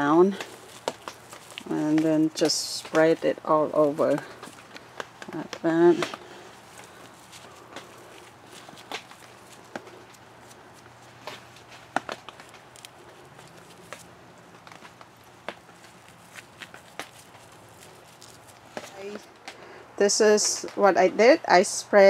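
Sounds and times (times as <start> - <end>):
gloved hands rustling soil: 0.0 - 20.8.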